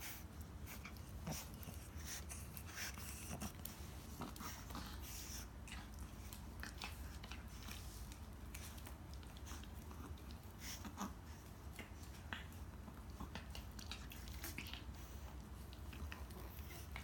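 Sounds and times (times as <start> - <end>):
dogs chewing rope toy: 0.0 - 17.0.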